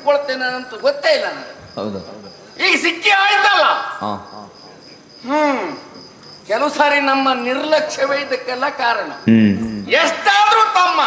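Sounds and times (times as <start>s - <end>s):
man speaking dialogue: 0.0s - 4.6s, 6.5s - 11.0s
man's drawn-out exclamation: 9.3s - 10.1s.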